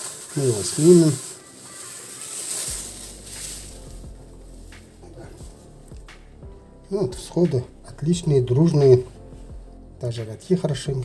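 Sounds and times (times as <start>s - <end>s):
cellophane crinkling: 0.0s - 5.7s.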